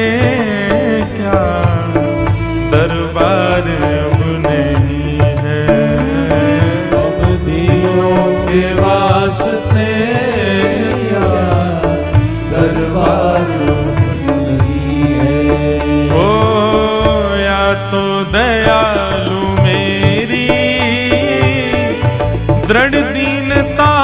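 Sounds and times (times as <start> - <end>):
devotional singing: 0.0 - 24.0
sustained instrumental tones: 0.0 - 24.0.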